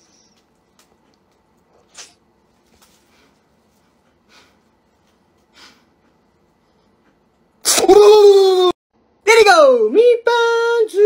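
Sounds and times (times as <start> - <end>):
man blowing a sneeze-like blast: 7.6 - 8.2.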